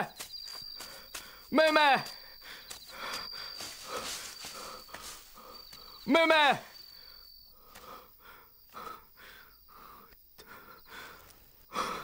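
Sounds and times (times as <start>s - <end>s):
footsteps in dry grass: 0.0s - 6.1s
crickets chirping: 0.0s - 12.0s
man shouting: 1.5s - 2.1s, 6.1s - 6.6s.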